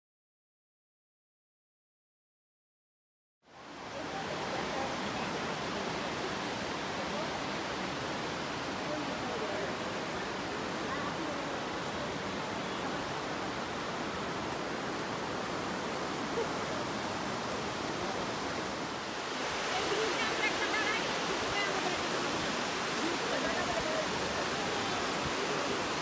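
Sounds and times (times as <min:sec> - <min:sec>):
river water rushing over rocks: 0:03.5 - 0:26.0.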